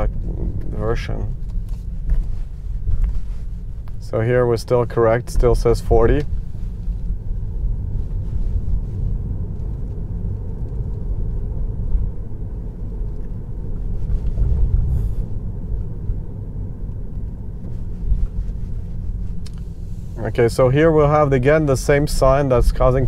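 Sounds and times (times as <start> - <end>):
tyre and road noise rumble: 0.0 - 23.0.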